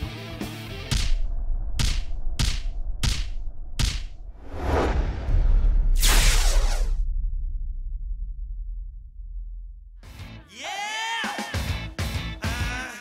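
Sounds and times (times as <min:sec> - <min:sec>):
deep rumble: 0:00.0 - 0:10.3
whooshing swells: 0:00.6 - 0:08.8.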